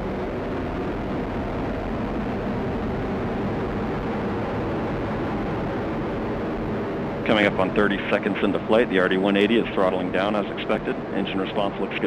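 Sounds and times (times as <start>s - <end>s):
rocket engine exhaust roar: 0.0s - 12.0s.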